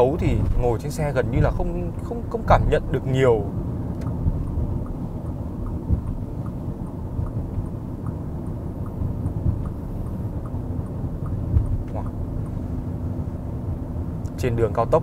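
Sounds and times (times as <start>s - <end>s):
road and engine rumble in car: 0.0s - 15.0s.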